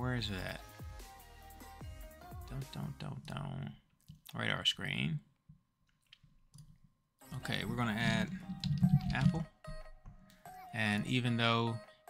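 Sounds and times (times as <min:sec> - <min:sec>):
person speaking: 0:07.3 - 0:09.5.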